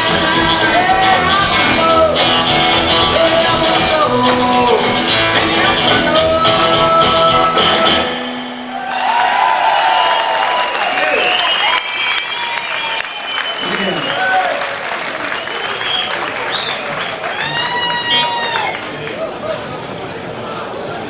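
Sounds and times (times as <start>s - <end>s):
rock and roll band music: 0.0s - 8.9s
crowd shouts and voices: 0.0s - 21.0s
audience applauding and cheering: 8.6s - 19.8s.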